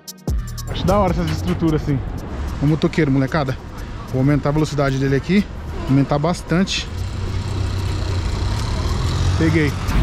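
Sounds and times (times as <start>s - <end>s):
road noise: 0.3s - 10.0s
motorcycle engine passing: 6.7s - 10.0s.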